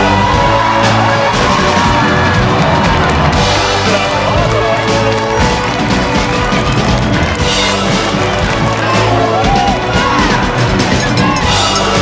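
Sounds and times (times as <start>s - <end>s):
loud music with steady beat: 0.0s - 12.0s.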